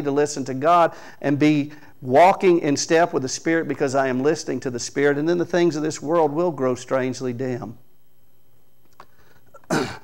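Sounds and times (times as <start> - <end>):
man clearing throat: 9.6 - 10.0.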